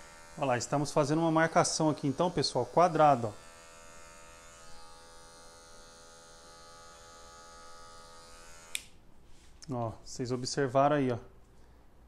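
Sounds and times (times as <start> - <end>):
electric hair clipper humming: 0.0 - 9.0.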